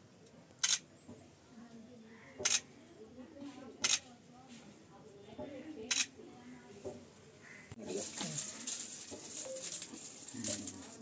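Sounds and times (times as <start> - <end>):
faint voices murmuring: 0.0 - 11.0
camera shutter click: 0.6 - 0.8.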